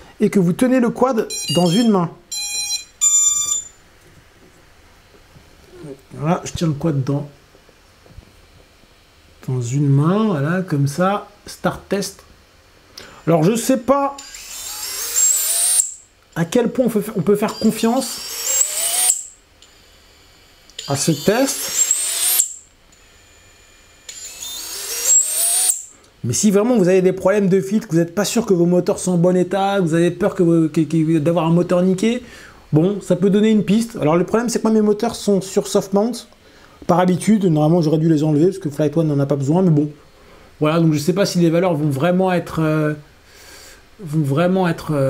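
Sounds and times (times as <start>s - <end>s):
high electronic motor beep: 1.3s - 3.8s, 13.2s - 16.5s, 17.2s - 25.9s.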